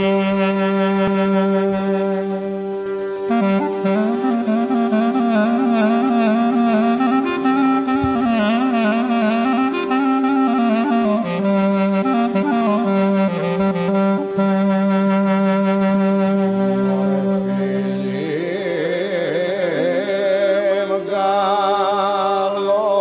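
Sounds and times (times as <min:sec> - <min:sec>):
ornamented folk melody: 0:00.0 - 0:23.0.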